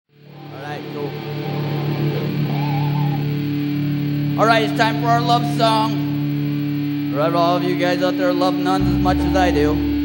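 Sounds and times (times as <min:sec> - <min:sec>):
amplified guitar drone: 0:00.1 - 0:10.0
voices calling out: 0:00.4 - 0:04.8.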